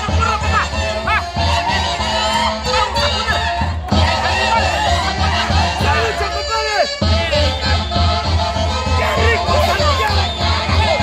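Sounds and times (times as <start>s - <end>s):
festival music with steady beat: 0.0s - 11.0s
high honking tone: 0.0s - 11.0s.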